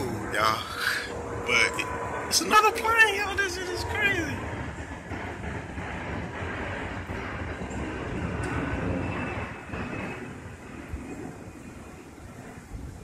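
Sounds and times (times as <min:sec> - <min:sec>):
airplane engine rumble: 0:00.0 - 0:13.0.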